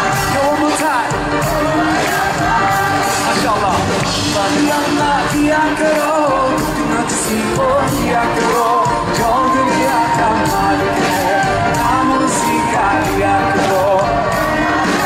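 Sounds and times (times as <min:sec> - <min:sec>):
live band music: 0:00.0 - 0:15.0
man singing: 0:00.0 - 0:15.0.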